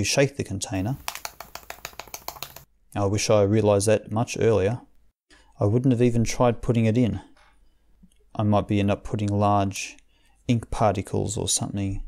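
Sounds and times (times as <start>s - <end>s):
ink container rattling: 0.8s - 2.7s.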